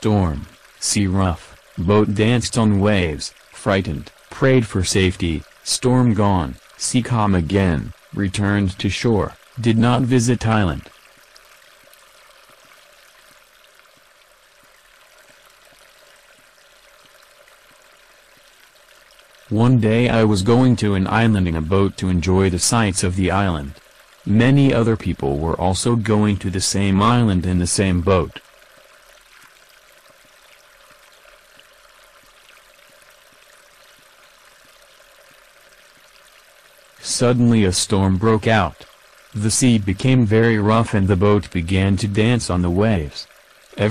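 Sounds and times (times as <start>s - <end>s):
running water rushing: 0.0s - 43.9s.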